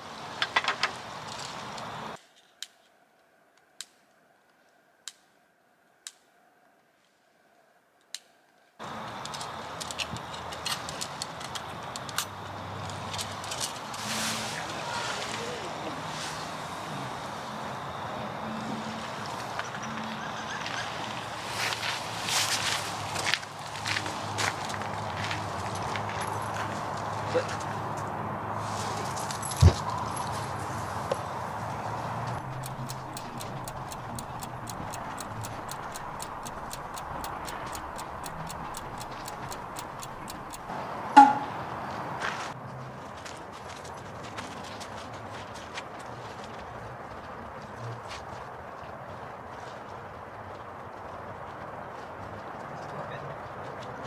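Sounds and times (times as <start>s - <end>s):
steady outdoor hiss: 0.0s - 42.6s
low voices: 13.9s - 21.2s
footsteps on gravel: 21.4s - 27.8s
fast even ticks: 32.3s - 41.4s
sharp knock: 41.2s - 41.6s.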